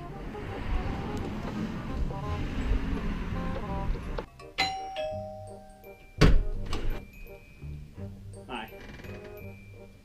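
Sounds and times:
background music: 0.0s - 10.0s
two-tone doorbell chime: 4.3s - 6.4s, 7.0s - 7.8s, 8.4s - 10.0s.

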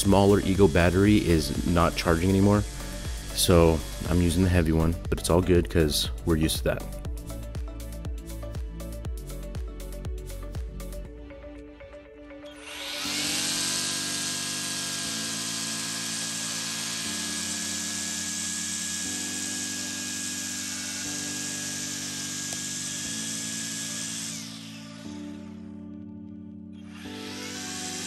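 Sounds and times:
string trimmer cutting grass: 0.0s - 5.0s, 12.5s - 25.9s, 26.8s - 28.0s
background music: 0.0s - 28.0s.

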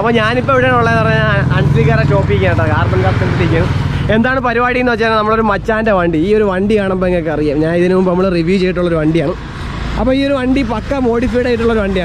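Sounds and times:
man speaking excitedly: 0.0s - 9.4s
vehicle engine drone: 0.0s - 12.0s.

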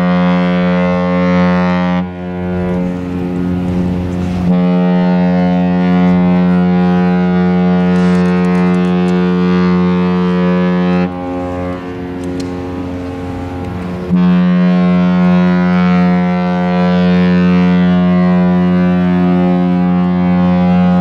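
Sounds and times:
deep ship horn blast echoing: 0.0s - 21.0s.

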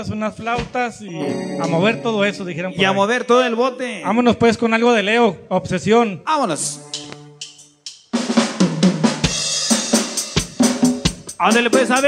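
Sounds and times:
live band playing: 1.1s - 3.2s, 6.6s - 12.0s.

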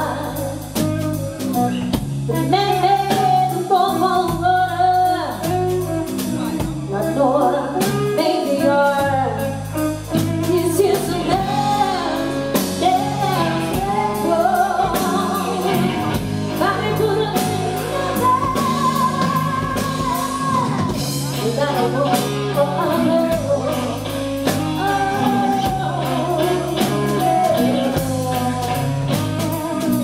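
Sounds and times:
bass guitar: 0.0s - 30.0s
drums: 0.0s - 30.0s
electric guitar: 0.0s - 30.0s
woman singing: 0.0s - 30.0s.

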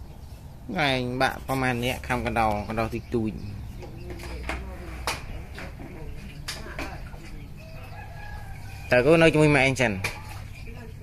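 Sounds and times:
rooster crowing: 7.6s - 9.2s.

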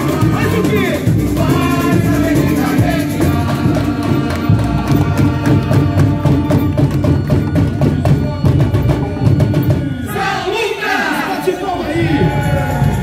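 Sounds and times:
amplified singing: 0.0s - 13.0s
samba drums and percussion: 0.0s - 13.0s.

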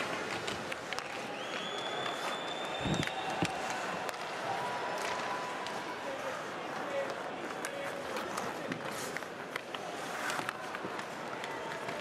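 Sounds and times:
arena crowd noise: 0.0s - 12.0s
sticks puck and skates on ice: 0.0s - 12.0s.

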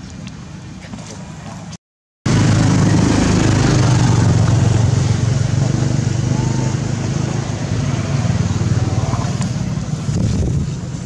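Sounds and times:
small engine running: 2.3s - 10.4s.

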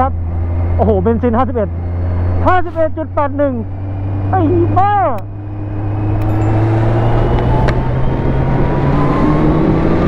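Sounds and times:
rushing wind and road noise: 0.0s - 10.0s.

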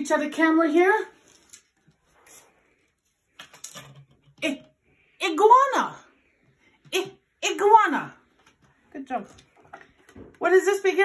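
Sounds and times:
person speaking: 6.8s - 11.0s.

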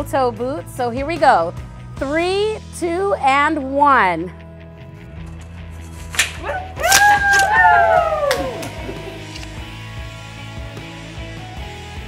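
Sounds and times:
background music: 0.0s - 12.0s
people whooping and cheering: 6.4s - 9.6s.

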